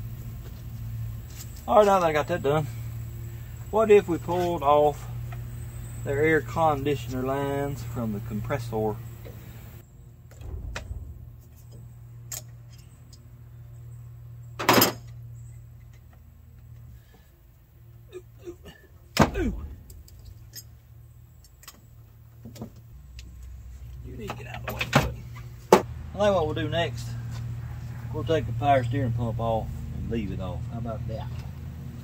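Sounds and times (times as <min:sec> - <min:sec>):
loud metal clanks: 0:10.3 - 0:13.1.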